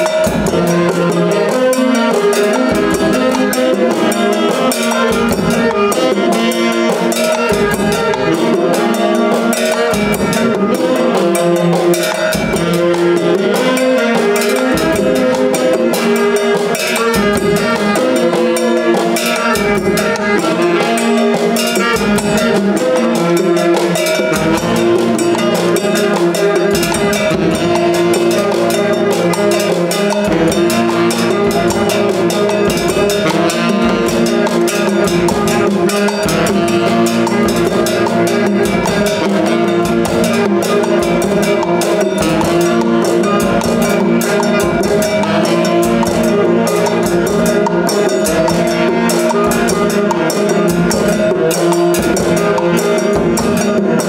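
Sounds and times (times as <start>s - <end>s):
bongos and hand percussion: 0.0s - 54.0s
drum kit beat: 0.0s - 54.0s
saxophones playing: 0.0s - 54.0s.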